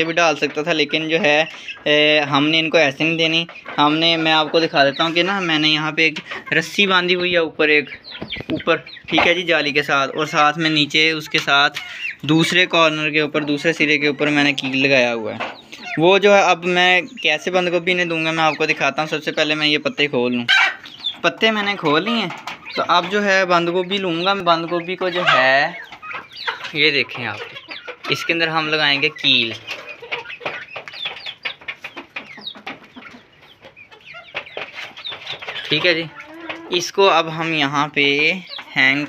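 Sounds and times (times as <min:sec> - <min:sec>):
hens clucking and chicks peeping: 0:00.0 - 0:39.0.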